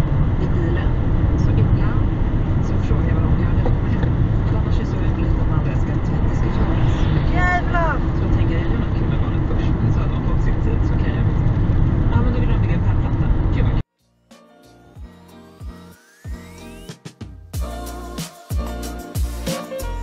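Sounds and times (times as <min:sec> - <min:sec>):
car road and tyre rumble: 0:00.0 - 0:13.9
falling voice-like tone: 0:06.2 - 0:08.5.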